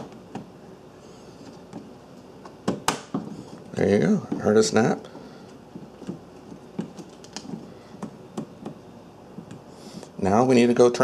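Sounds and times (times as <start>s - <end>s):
fingers clicking and tapping thermostat: 5.1s - 10.1s.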